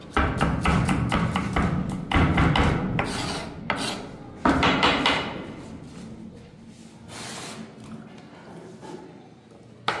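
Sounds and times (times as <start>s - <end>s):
knife scraping cutting board: 3.0s - 4.1s.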